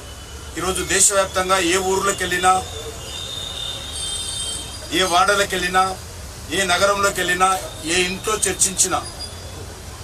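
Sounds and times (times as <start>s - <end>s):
high steady squeal: 0.0s - 5.4s.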